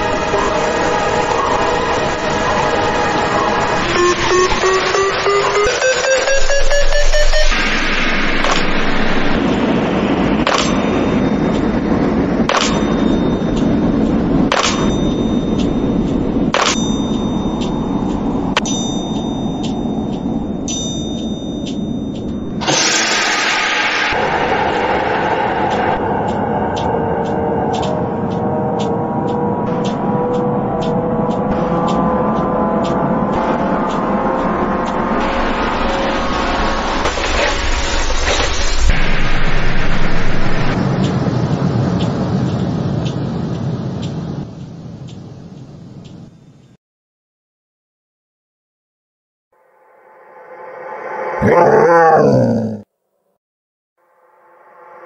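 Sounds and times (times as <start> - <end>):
sudden burst of noise: 3.5 - 12.9, 22.6 - 26.6
upward gliding tone: 3.8 - 7.7
noisy wash with sharp hits: 3.8 - 15.1
held tone: 3.9 - 7.7.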